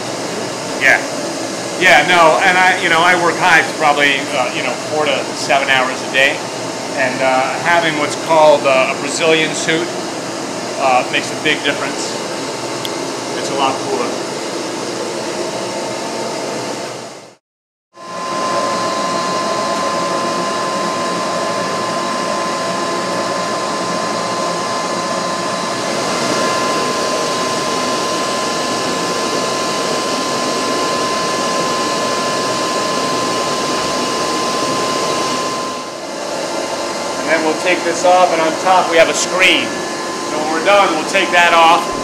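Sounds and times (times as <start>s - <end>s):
vacuum motor whine: 0.0s - 17.4s, 18.0s - 42.0s.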